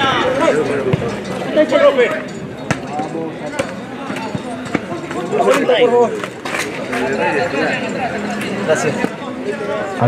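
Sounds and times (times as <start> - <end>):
voices of players: 0.0 - 10.0.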